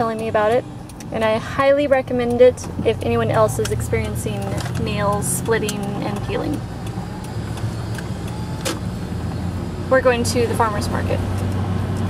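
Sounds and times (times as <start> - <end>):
car engine and road hum: 0.0 - 12.0.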